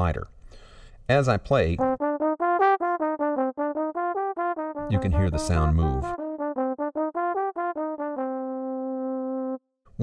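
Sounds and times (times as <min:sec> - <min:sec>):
trombone playing accented notes: 0:01.8 - 0:09.6.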